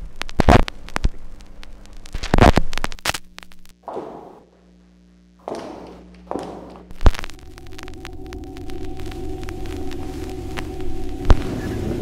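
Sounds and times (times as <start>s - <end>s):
faint hum: 0.0s - 12.0s
steady low drone: 3.8s - 12.0s.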